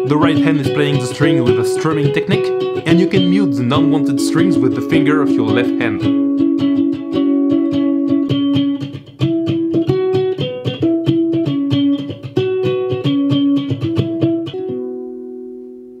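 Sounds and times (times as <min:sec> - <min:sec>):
lyre strummed rapidly: 0:00.0 - 0:14.8.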